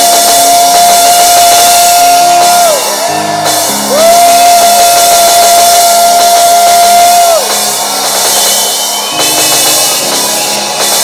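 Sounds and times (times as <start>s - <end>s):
held high note: 0.0s - 11.0s.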